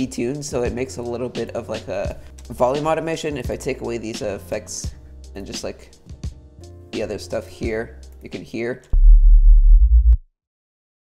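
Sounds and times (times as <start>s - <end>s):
low wavering synth bass note: 9.0s - 10.2s.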